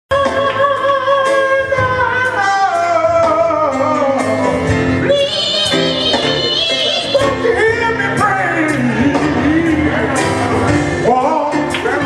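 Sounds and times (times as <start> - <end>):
man singing gospel-style: 0.1 - 12.0.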